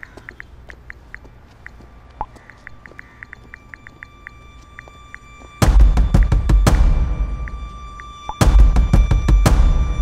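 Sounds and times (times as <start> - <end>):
low hum: 1.9 - 10.0.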